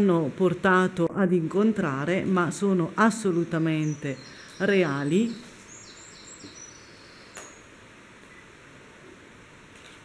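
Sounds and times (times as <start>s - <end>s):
high bird chirps: 5.7s - 7.7s.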